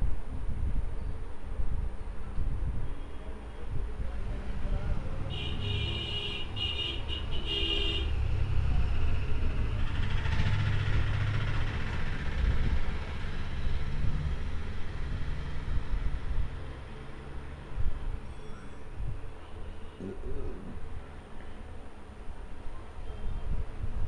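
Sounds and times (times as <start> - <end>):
road traffic rumble: 0.0 - 24.0.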